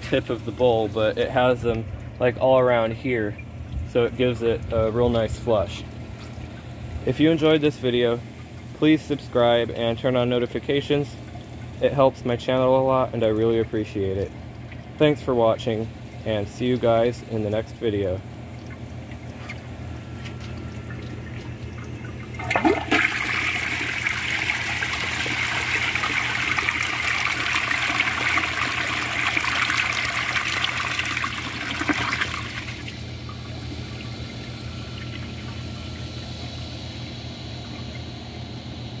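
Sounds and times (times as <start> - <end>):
toilet flushing: 20.4 - 36.2
toilet tank refilling hiss: 22.3 - 33.0.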